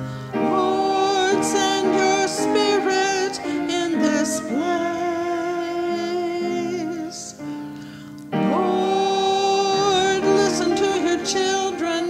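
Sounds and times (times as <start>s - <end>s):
soft sustained accompaniment: 0.0s - 12.0s.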